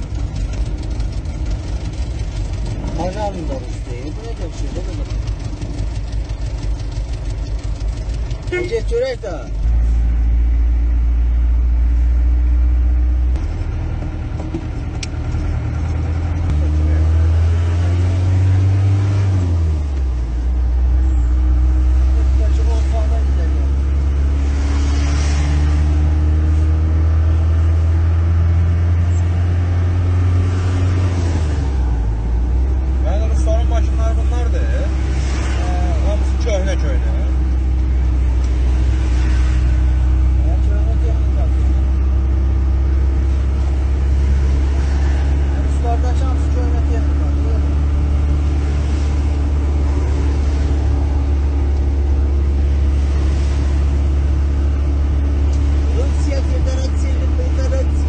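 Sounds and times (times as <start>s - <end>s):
car engine drone: 0.0s - 58.0s
road noise inside car: 0.0s - 58.0s.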